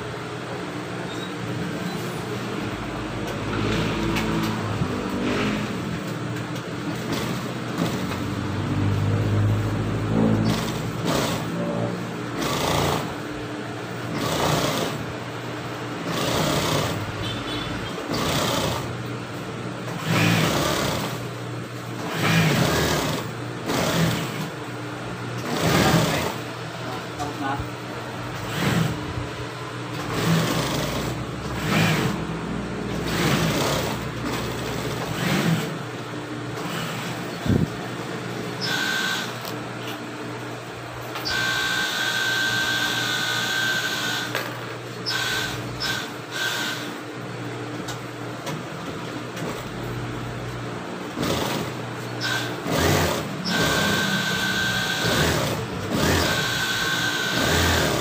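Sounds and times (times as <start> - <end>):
sewing machine motor hum: 1.0 - 19.1, 19.9 - 21.3, 21.9 - 24.6, 25.4 - 27.6, 28.2 - 37.8, 38.5 - 39.6, 41.1 - 47.0, 51.0 - 58.0
sewing machine stitching bursts: 10.1 - 11.7, 12.3 - 13.2, 14.0 - 15.1, 16.0 - 18.9, 19.9 - 21.3, 22.0 - 24.6, 25.4 - 26.4, 28.4 - 29.0, 29.9 - 32.3, 32.9 - 35.8, 38.6 - 39.4, 45.1 - 46.9, 51.1 - 58.0.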